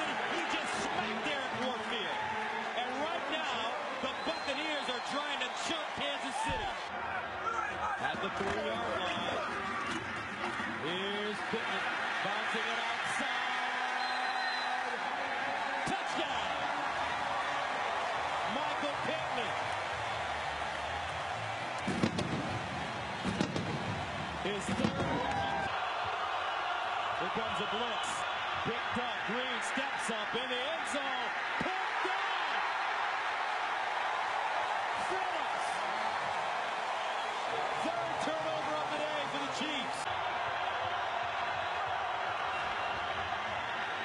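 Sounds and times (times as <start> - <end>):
stadium crowd shouting: 0.0 - 44.0.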